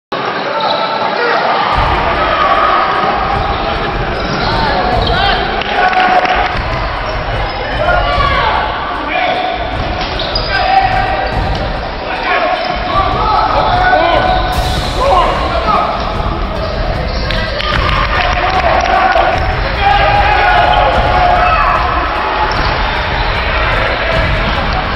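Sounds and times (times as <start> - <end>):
sneakers squeaking: 1.7 - 18.6, 19.3 - 24.9.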